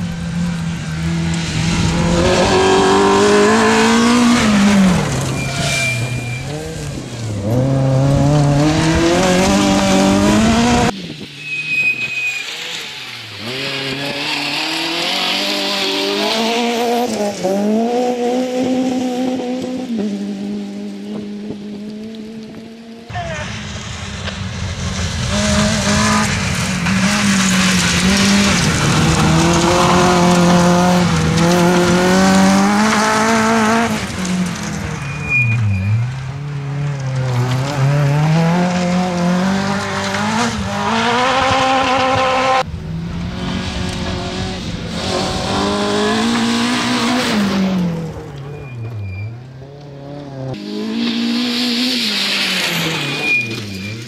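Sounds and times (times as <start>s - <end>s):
rally car engine revving: 0.0s - 54.0s
tyres on gravel: 0.0s - 54.0s.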